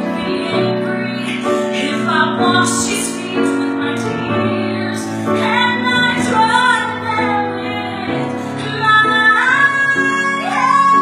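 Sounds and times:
piano accompaniment: 0.0s - 11.0s
woman singing gospel ballad: 0.0s - 11.0s.

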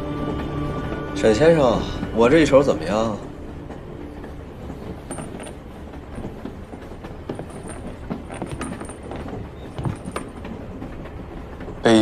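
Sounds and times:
faint rattles and clicks: 0.0s - 12.0s
train rumbling: 0.0s - 12.0s.

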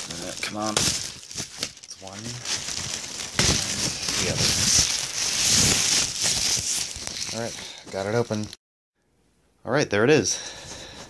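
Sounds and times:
plastic wrapping crinkling: 0.0s - 8.6s.

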